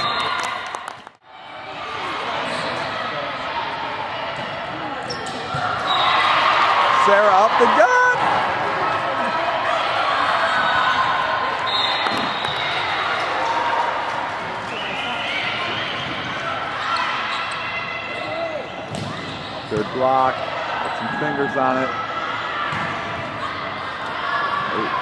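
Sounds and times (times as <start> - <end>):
players and spectators calling out: 1.5 - 25.0.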